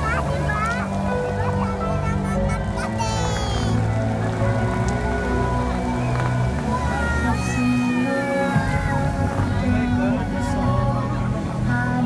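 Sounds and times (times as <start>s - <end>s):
fountain water jets hissing: 0.0s - 12.0s
music over loudspeakers: 0.0s - 12.0s.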